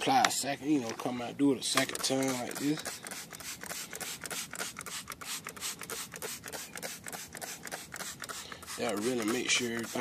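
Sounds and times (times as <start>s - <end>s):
rag scrubbing wheel rim: 5.9s - 10.0s.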